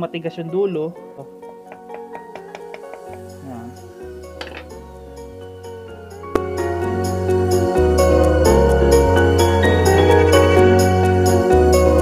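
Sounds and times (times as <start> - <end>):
background music with bass: 1.6 - 12.0.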